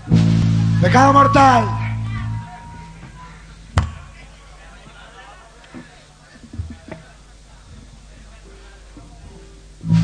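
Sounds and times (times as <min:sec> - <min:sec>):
low amplifier hum: 0:00.0 - 0:10.0.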